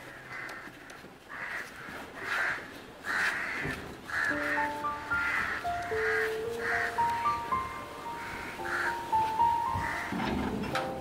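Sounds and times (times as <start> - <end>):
bird calling: 0.0 - 11.0
soft music of held notes: 4.0 - 11.0.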